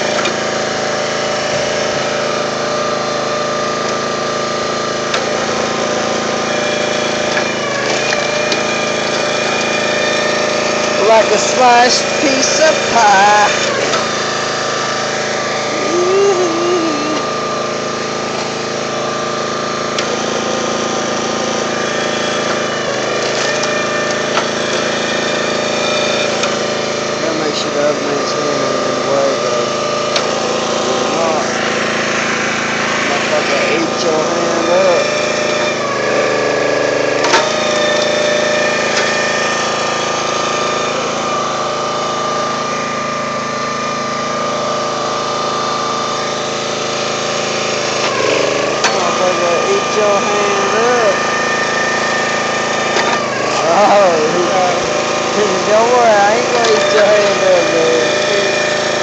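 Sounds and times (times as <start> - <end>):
small gas engine running: 0.0 - 59.0.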